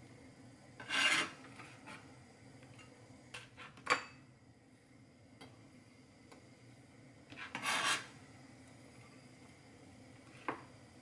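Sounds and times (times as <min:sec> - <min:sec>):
knife scraping cutting board: 0:00.8 - 0:02.1, 0:07.3 - 0:08.2.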